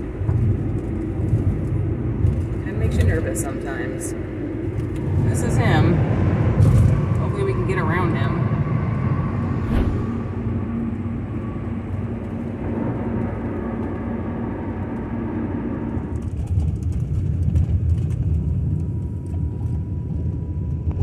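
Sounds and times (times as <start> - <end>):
road and engine rumble in cabin: 0.0 - 21.0.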